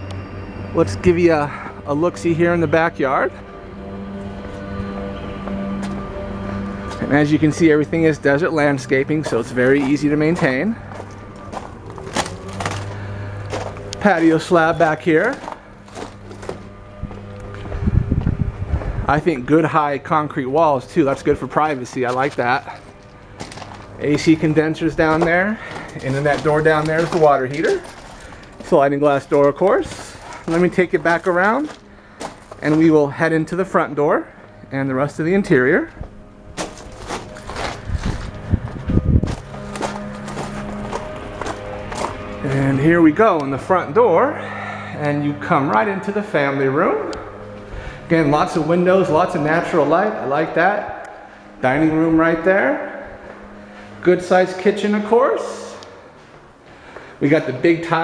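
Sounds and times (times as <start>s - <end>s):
steady low hum: 0.0s - 58.0s
heavy low thumps: 8.4s - 19.6s, 35.8s - 43.3s
soft footsteps: 9.1s - 19.0s, 21.1s - 33.1s, 35.9s - 42.7s, 55.8s - 57.1s.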